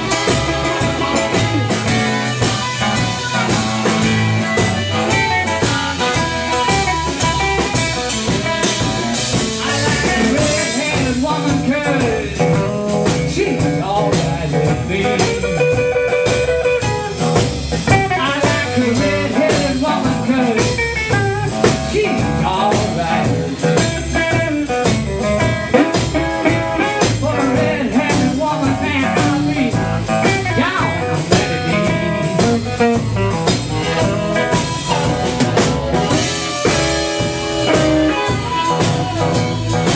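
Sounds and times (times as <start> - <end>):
bass guitar: 0.0 - 39.9
drum kit keeping a steady beat: 0.0 - 39.9
electric guitar: 0.0 - 39.9.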